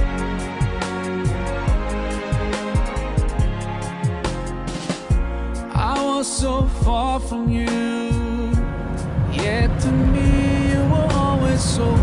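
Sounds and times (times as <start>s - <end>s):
slow song with singer: 0.0s - 12.0s
boat engine rumble: 8.2s - 12.0s.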